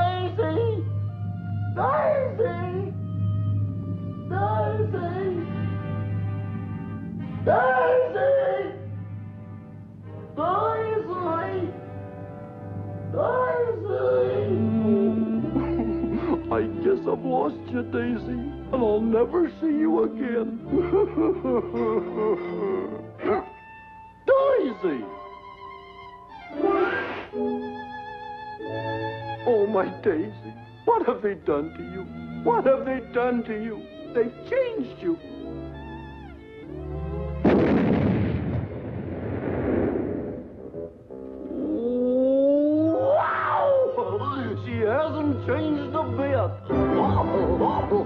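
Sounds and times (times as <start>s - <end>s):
low orchestral chord: 0.0s - 7.5s
cartoon dog whimpering and sobbing: 20.6s - 23.6s, 41.5s - 44.2s
cartoon explosion blast: 37.4s - 41.0s.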